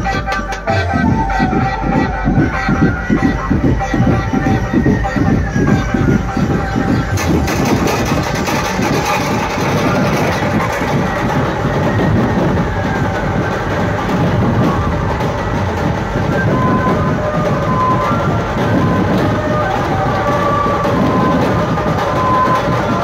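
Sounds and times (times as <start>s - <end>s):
band music through horn loudspeakers: 0.0s - 7.4s.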